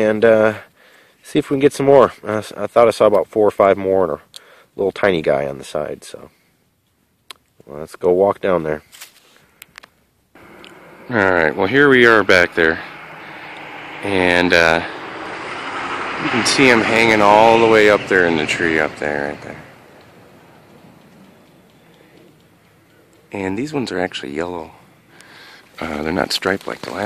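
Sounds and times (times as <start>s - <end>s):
faint ambient hiss: 0.0s - 27.0s.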